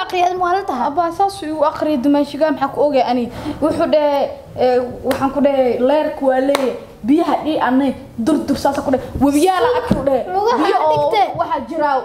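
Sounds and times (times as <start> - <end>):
woman talking animatedly: 0.0 - 12.0.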